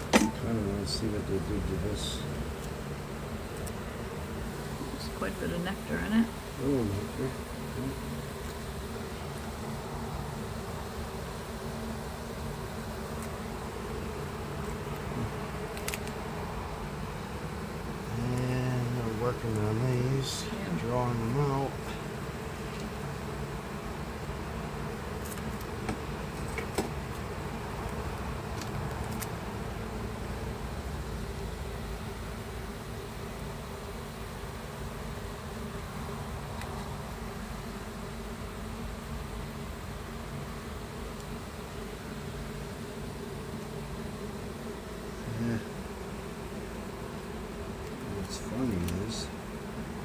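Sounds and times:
bees buzzing drone: 0.0 - 50.0.

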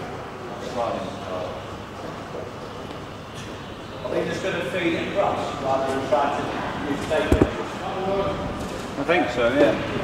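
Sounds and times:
men talking indistinctly: 3.9 - 10.0
quick knocks: 7.3 - 7.6.

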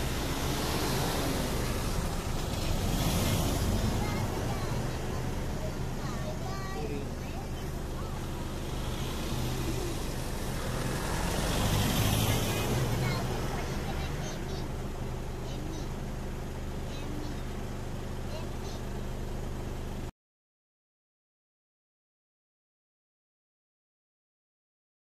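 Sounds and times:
vehicle engines idling: 0.0 - 20.1
faint voices: 0.8 - 16.1, 16.7 - 18.9.

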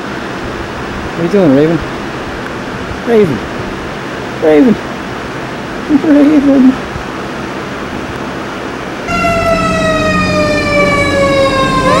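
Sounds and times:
electric fan rushing: 0.0 - 12.0
fire truck siren wailing: 9.1 - 12.0.

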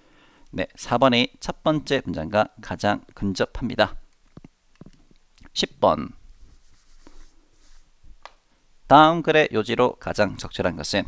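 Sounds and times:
faint rubbing and handling noise: 3.1 - 8.8.

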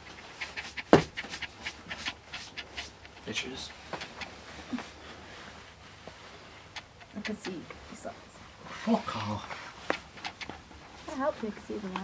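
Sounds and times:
dog panting: 0.0 - 5.3, 6.2 - 8.2, 9.3 - 11.2.

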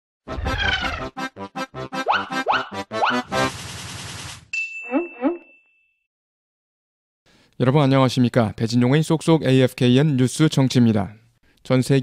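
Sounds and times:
bell-like ding: 4.6 - 6.0.

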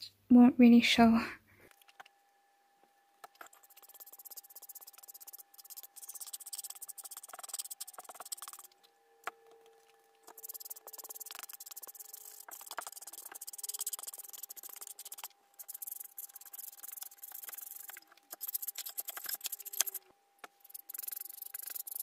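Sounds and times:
paintbrush scratching on wood: 3.2 - 8.8, 9.7 - 22.0.

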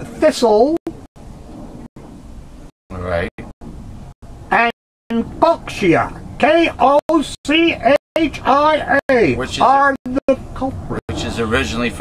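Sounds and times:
low rumbling noise: 0.9 - 12.0.

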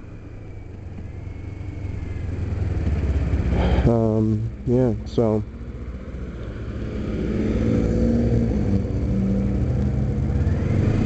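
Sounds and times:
motorcycle engine running: 0.0 - 7.2.

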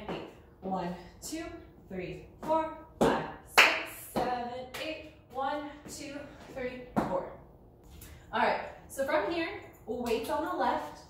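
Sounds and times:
boots dancing on tile floor: 0.0 - 0.8, 2.3 - 7.3
woman counting aloud: 0.0 - 7.4.

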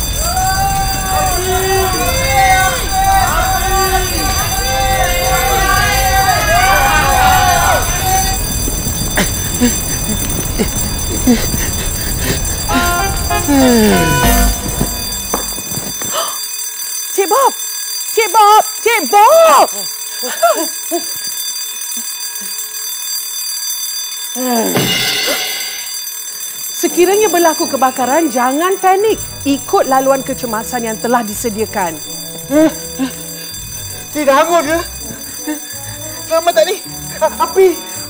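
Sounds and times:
fire alarm bell ringing: 0.0 - 38.0
people calling out: 0.2 - 8.4, 12.7 - 15.3
falling voice sound: 12.7 - 15.1.

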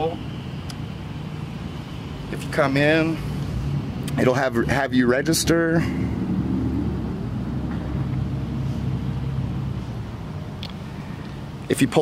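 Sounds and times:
low outdoor background hum: 0.0 - 12.0.

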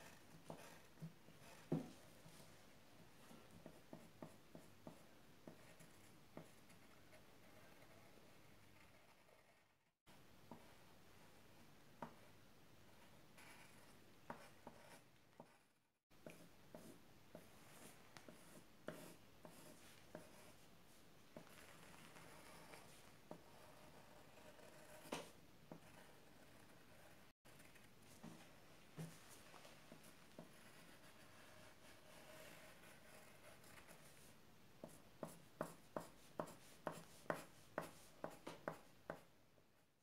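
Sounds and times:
pencil strokes on paper: 0.0 - 9.9, 12.0 - 39.3.

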